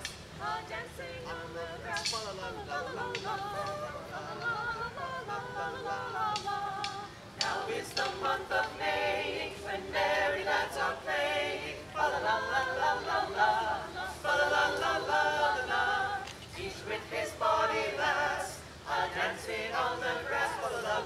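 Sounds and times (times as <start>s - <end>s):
mixed choir singing a cappella: 0.0s - 21.0s.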